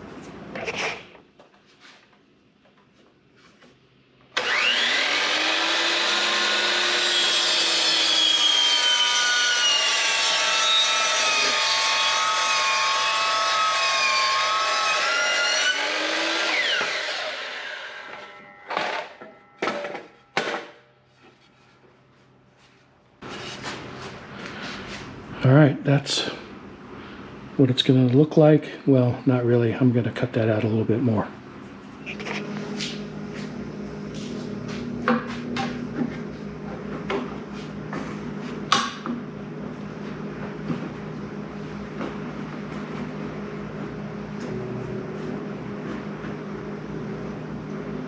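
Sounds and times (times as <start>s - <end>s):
miter saw cutting wood: 4.3s - 19.9s.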